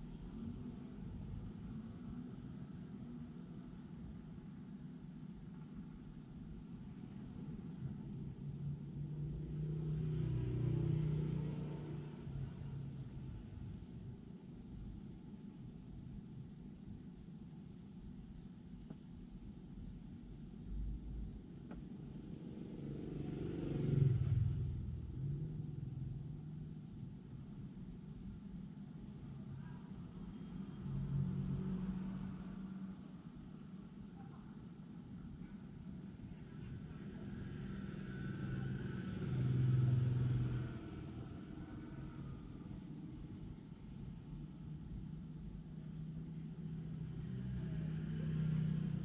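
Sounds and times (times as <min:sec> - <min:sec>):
vehicle engine passing by: 0:09.1 - 0:12.9, 0:22.2 - 0:26.2, 0:30.6 - 0:33.0, 0:36.9 - 0:43.4, 0:46.6 - 0:49.0
car driving past: 0:09.1 - 0:13.0, 0:22.2 - 0:26.2, 0:30.4 - 0:33.0, 0:36.6 - 0:43.4, 0:46.6 - 0:49.0.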